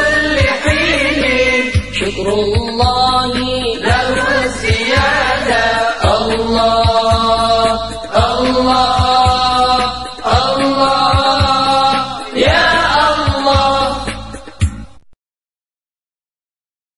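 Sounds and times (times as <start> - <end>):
devotional singing: 0.0 - 14.6
deep drum beats: 0.0 - 14.8.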